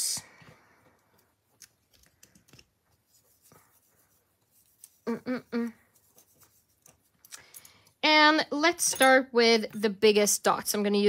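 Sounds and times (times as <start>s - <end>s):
faint clicks of small tools: 6.8s - 7.9s.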